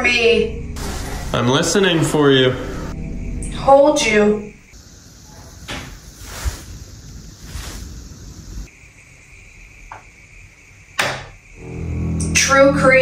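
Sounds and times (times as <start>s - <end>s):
soft rushes of noise: 6.0s - 8.7s.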